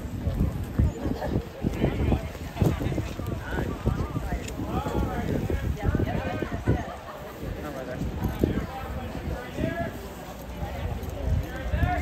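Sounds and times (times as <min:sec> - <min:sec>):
people talking: 0:00.0 - 0:12.0.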